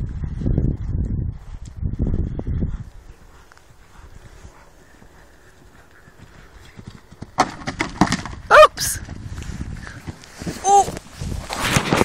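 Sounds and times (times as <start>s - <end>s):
horse hoofbeats on soft ground: 0.0s - 12.0s.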